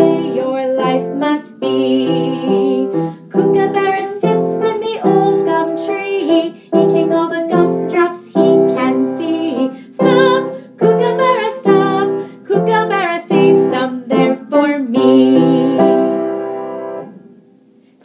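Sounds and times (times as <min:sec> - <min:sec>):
woman singing: 0:00.0 - 0:16.6
upright piano accompaniment: 0:00.0 - 0:18.0.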